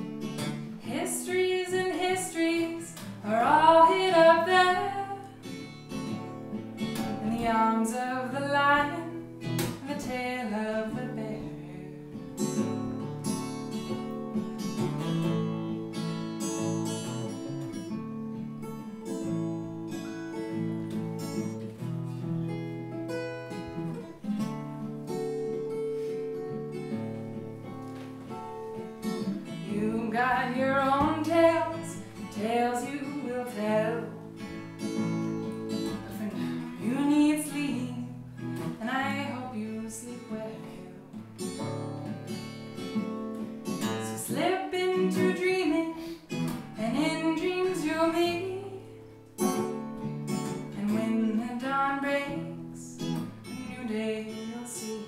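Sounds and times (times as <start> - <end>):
acoustic guitar chords: 0.0 - 55.0
woman singing: 0.3 - 5.8, 7.0 - 12.2, 29.4 - 35.0, 35.6 - 41.6, 43.8 - 49.6, 50.4 - 55.0.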